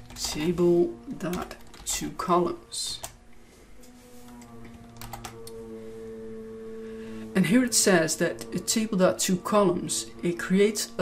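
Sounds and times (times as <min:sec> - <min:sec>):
computer keyboard typing: 0:00.0 - 0:00.6, 0:01.2 - 0:02.3, 0:05.0 - 0:05.5
faint steady hum: 0:00.0 - 0:11.0.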